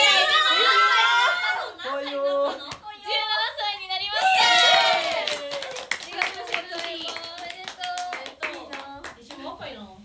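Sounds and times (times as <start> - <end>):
excited voices: 0.0 - 6.0
women clapping hands: 4.6 - 9.4.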